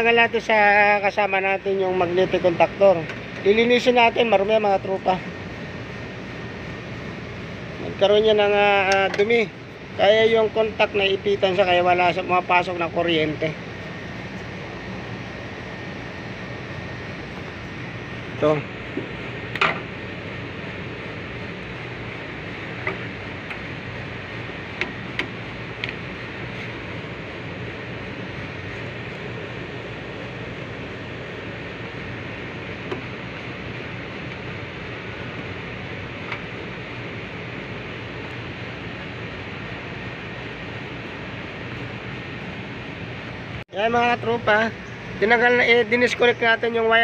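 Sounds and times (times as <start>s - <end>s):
mechanical hum: 0.0s - 47.0s.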